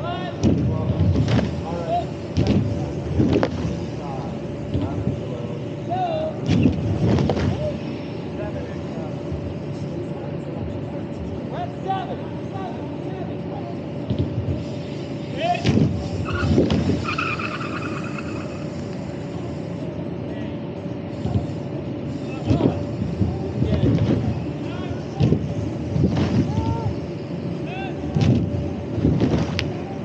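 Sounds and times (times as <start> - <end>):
steady hum: 0.0 - 30.0
bike tyres rolling down ramp: 15.8 - 19.4.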